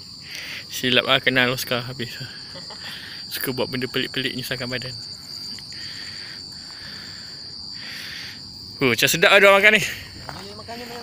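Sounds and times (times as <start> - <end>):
insects trilling: 0.0 - 11.0
pulsing insect chirp: 0.0 - 11.0.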